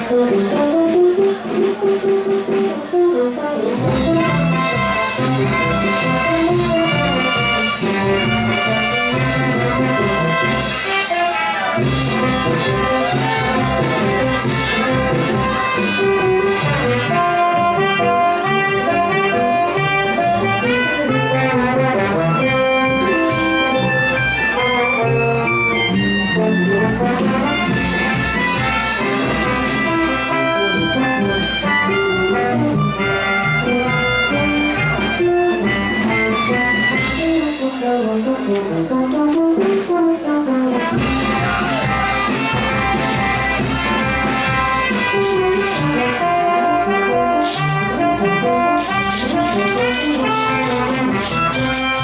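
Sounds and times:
trumpets and trombones: 0.0 - 52.0
drum beat: 11.9 - 17.0, 40.9 - 45.6.

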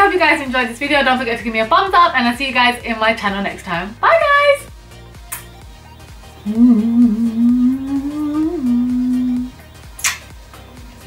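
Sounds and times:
woman humming: 6.4 - 9.7.

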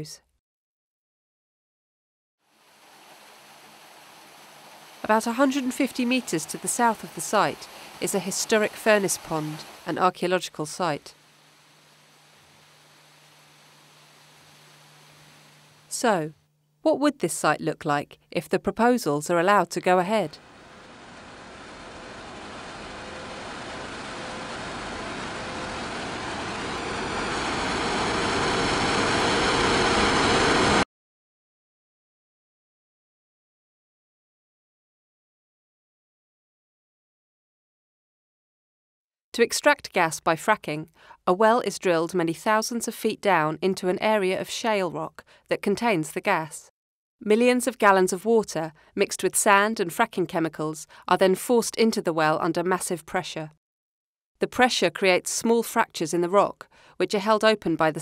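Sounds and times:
faint outdoor background hiss: 2.5 - 25.9
faint hum: 2.6 - 17.3
drilling rig machinery noise: 20.4 - 30.8.

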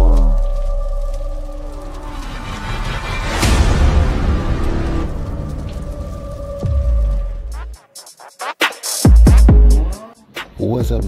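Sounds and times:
deep bass boom: 0.0 - 7.8.

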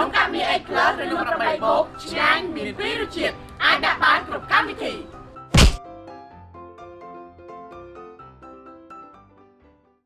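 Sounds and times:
light plucked background music: 0.0 - 6.3
heavy thump: 5.6 - 5.8.

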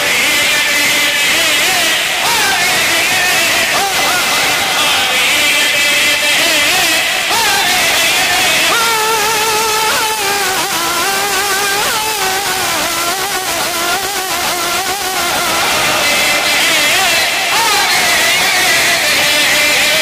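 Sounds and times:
man chanting melismatic notes: 0.0 - 20.0.

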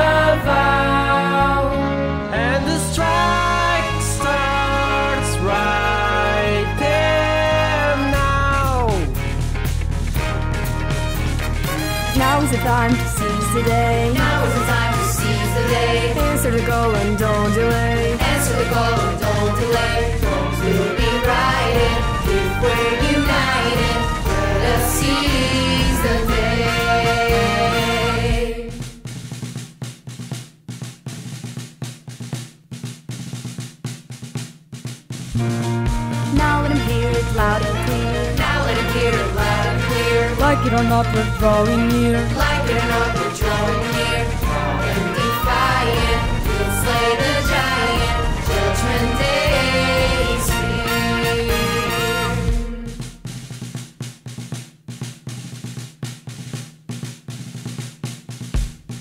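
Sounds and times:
bass line: 0.0 - 29.0, 35.4 - 53.3
drum kit playing driving pattern: 2.8 - 59.0.

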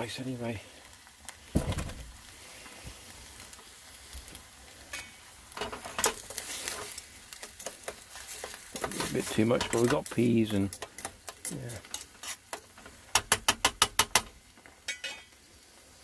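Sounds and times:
gas stove hiss: 0.0 - 16.0
rice sizzling in a pan: 0.0 - 16.0
low thump: 1.5 - 2.1
sharp clicks and knocks: 8.7 - 14.4.

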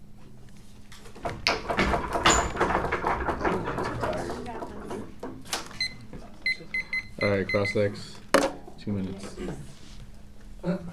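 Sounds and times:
electronic timer beeping: 5.8 - 7.8.

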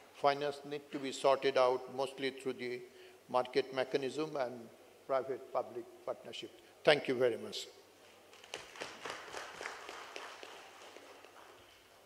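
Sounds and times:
scattered applause: 8.3 - 11.7.

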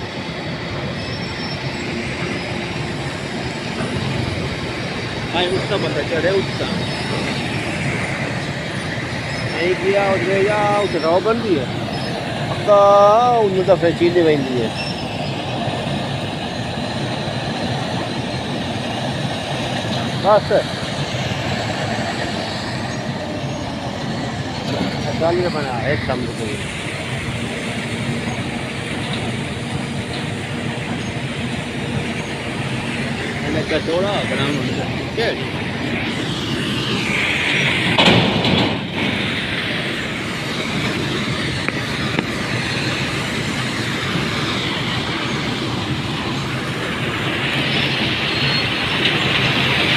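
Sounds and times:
mill machinery rumbling: 0.0 - 49.9.

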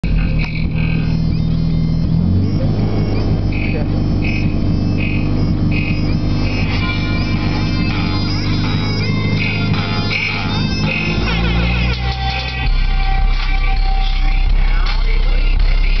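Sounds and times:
loud bass-heavy music from subwoofer: 0.0 - 16.0.

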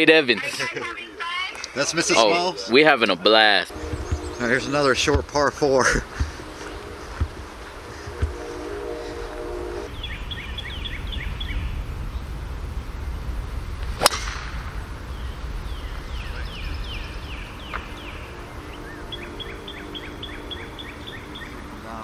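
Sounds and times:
birds chirping: 0.0 - 12.4, 14.0 - 22.0
golf club striking ball: 13.8 - 14.9.

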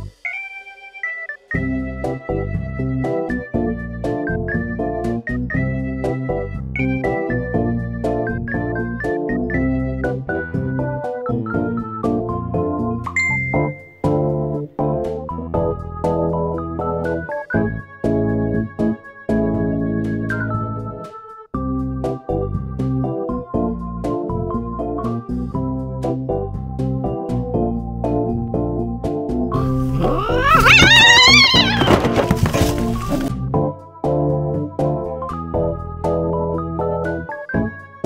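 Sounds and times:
organ-like keyboard music: 0.0 - 29.5
cat yowling: 29.6 - 32.5.

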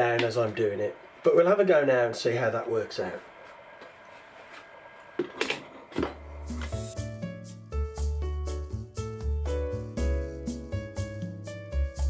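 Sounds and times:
background music with bass line: 6.4 - 12.0.

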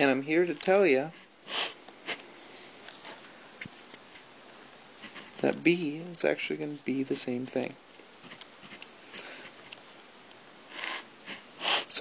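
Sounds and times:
person sniffing: 1.1 - 2.8, 9.1 - 9.6, 10.7 - 12.0
pen scratching on paper: 5.0 - 5.4, 8.2 - 8.8, 10.7 - 12.0.

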